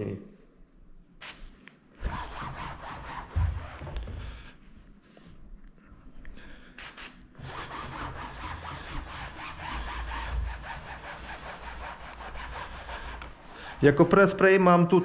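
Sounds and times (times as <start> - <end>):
mitt rubbing on fabric: 1.2 - 4.4, 7.4 - 14.4.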